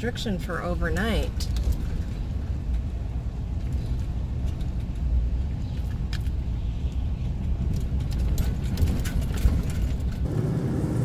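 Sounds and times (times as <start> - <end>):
van engine and road noise: 0.0 - 11.0.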